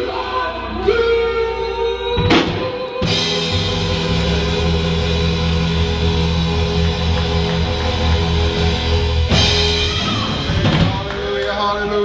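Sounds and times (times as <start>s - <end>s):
praise band with electric guitar: 0.0s - 12.0s.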